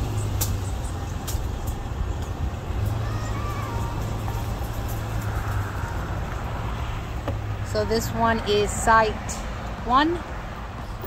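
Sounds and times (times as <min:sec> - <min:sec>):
vehicle hum and road noise: 0:00.0 - 0:11.0.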